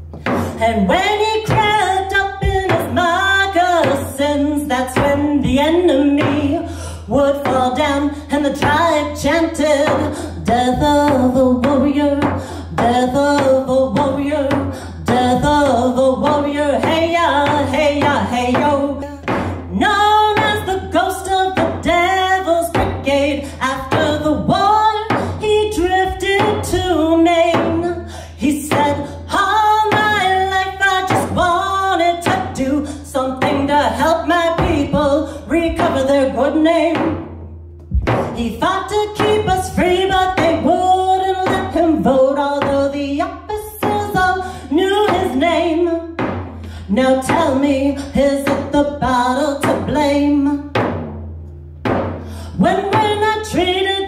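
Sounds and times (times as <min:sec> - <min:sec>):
frame drum struck with beater: 0:00.0 - 0:04.3, 0:04.9 - 0:27.9, 0:33.4 - 0:43.0, 0:43.8 - 0:53.8
woman singing: 0:00.0 - 0:37.4, 0:38.0 - 0:50.9, 0:52.3 - 0:54.0.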